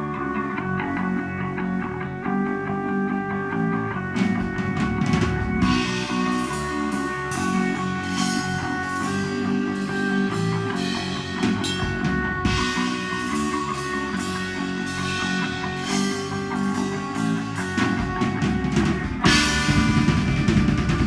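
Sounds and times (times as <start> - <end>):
distorted electric guitar riff: 0.0 - 21.0
drums and crashing cymbals: 4.2 - 21.0.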